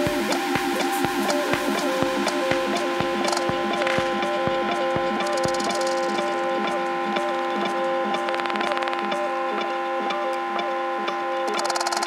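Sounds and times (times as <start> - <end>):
percussive clicks: 0.0 - 12.0
rapid ticking roll: 0.0 - 12.0
sustained synth tones: 0.0 - 12.0.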